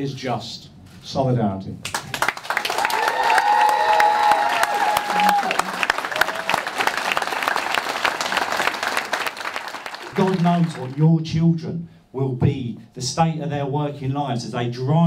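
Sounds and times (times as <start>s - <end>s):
crowd applauding: 1.9s - 11.0s.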